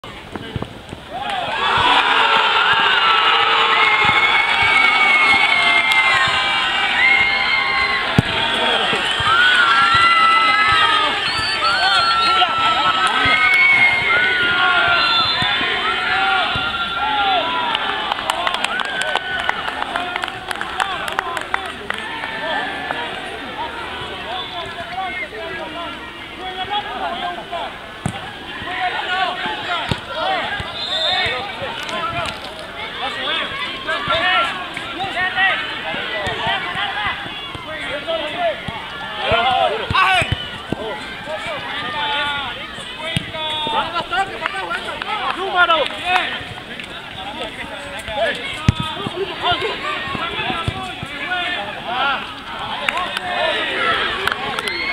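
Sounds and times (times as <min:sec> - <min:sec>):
players shouting: 0:01.1 - 0:54.9.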